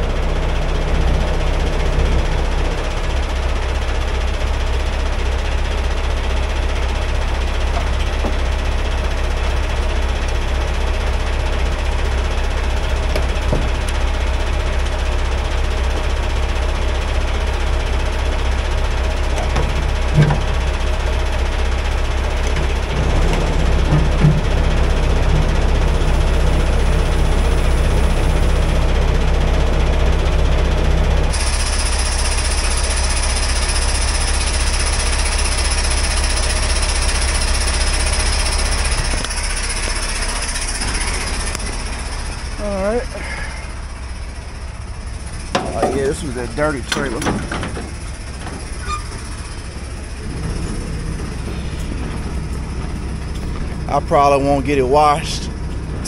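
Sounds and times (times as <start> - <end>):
diesel engine idling: 0.0 - 56.0
short metallic knocks: 45.5 - 49.6.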